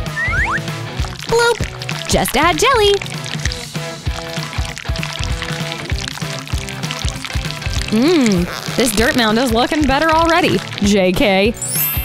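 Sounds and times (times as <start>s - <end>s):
background music with beat: 0.0s - 2.0s, 3.0s - 8.3s.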